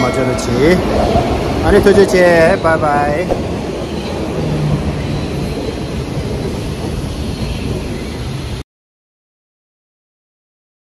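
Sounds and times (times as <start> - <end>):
subway train running past: 0.0 - 8.6.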